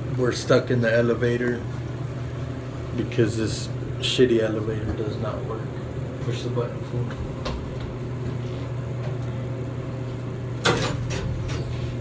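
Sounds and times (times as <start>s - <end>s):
low hum in elevator: 0.0s - 12.0s
elevator doors opening clunk: 10.6s - 11.7s.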